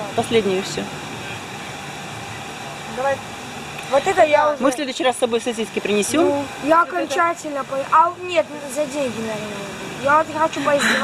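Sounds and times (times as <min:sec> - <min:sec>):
machinery hum and hiss: 0:00.0 - 0:11.0.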